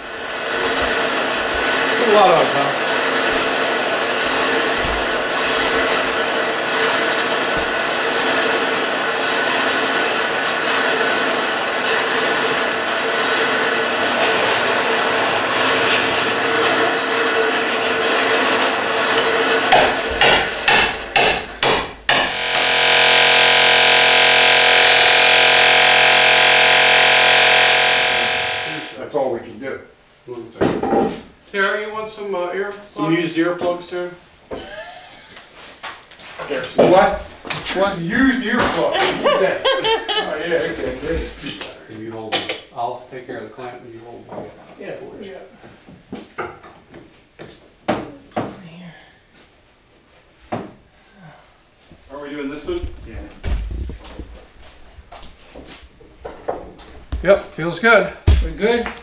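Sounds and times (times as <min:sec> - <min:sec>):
power tool running: 0:00.0 - 0:29.0
background din: 0:19.7 - 0:29.0
hammer blows on metal rod: 0:19.7 - 0:29.0.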